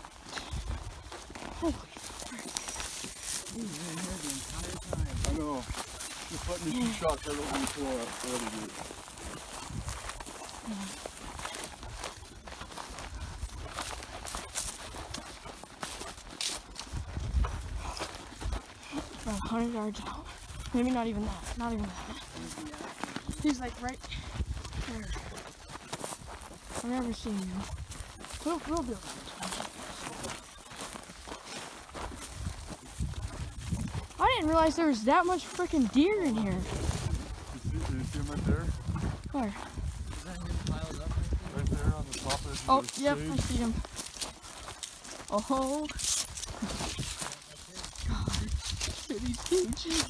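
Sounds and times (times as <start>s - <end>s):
brush rustling against clothes: 0.0s - 38.5s, 39.2s - 50.0s
footsteps crunching through brush: 0.0s - 50.0s
stems rustling and snapping: 42.0s - 50.0s.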